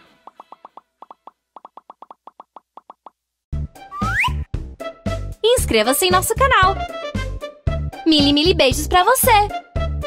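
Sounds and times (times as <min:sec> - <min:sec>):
bouncy children's music: 0:03.8 - 0:10.0.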